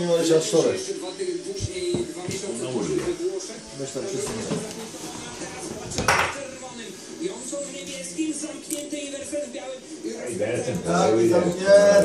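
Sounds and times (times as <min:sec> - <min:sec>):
indistinct background speech: 0:00.0 - 0:12.0
television playing: 0:00.0 - 0:12.0.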